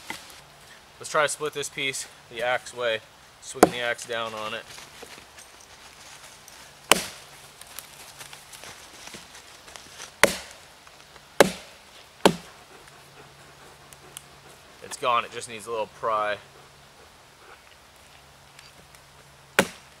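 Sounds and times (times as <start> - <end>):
axe chopping wood: 3.6 - 3.9, 6.9 - 7.3, 10.2 - 10.6, 11.4 - 12.5, 19.6 - 19.9.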